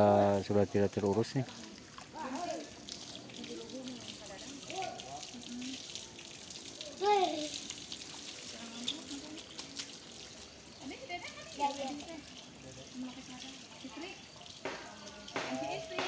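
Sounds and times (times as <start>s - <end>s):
water running into a pool: 0.0s - 16.0s.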